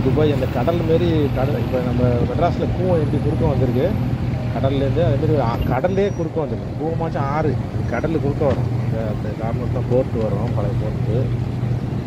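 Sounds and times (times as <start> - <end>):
steady low hum: 0.0 - 12.0
person talking: 4.6 - 11.3.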